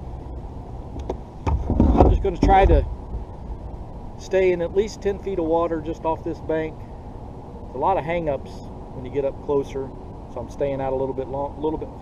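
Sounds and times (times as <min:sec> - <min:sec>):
steady low rumble: 0:00.0 - 0:12.0
bumps in plastic kayak: 0:01.4 - 0:02.8.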